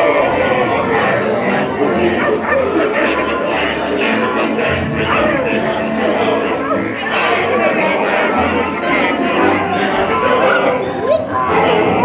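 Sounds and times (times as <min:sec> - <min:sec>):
babble of voices: 0:00.0 - 0:12.0
faint music: 0:00.0 - 0:12.0.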